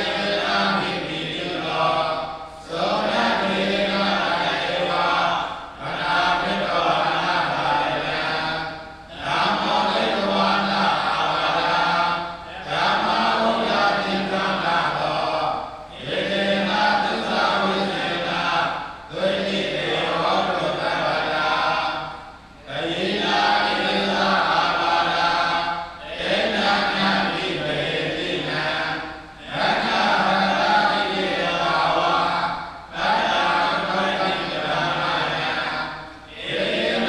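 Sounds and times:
monks chanting together: 0.0 - 37.0.

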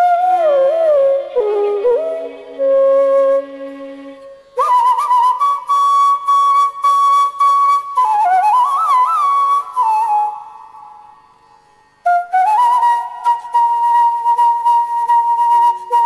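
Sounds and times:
bamboo flute playing solo: 0.0 - 16.0.

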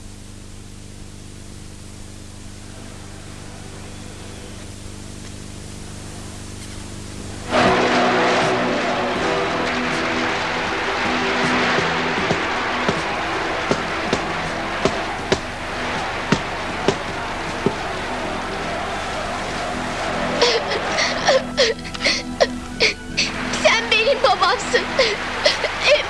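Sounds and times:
tape hiss and hum: 0.0 - 26.0
music with dense noisy background: 7.1 - 26.0.

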